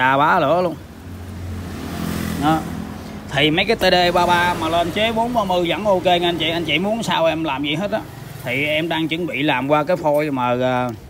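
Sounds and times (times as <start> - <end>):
vehicle passing by: 0.1 - 9.8.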